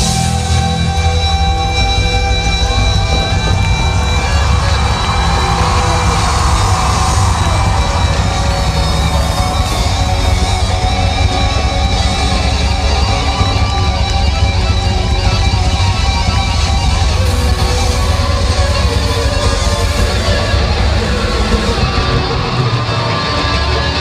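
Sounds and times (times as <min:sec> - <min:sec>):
bass: 0:00.0 - 0:24.0
distorted electric guitars: 0:00.0 - 0:24.0
drums: 0:00.0 - 0:24.0.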